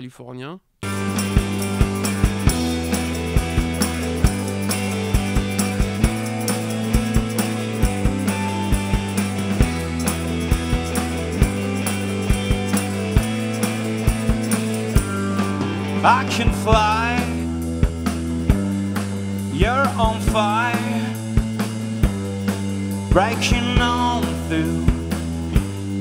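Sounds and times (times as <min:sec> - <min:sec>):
drum kit beat: 0:00.8 - 0:26.0
electric guitar: 0:00.8 - 0:26.0
held bass notes: 0:00.8 - 0:26.0
shaken tambourine: 0:00.8 - 0:26.0.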